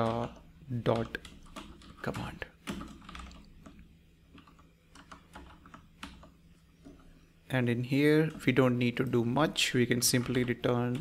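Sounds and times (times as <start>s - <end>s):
typing on computer keyboard: 0.0s - 3.8s, 4.4s - 6.3s.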